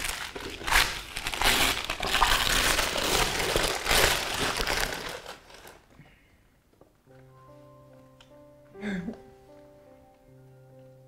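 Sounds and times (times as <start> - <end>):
wrapping paper crinkling: 0.0 - 5.9.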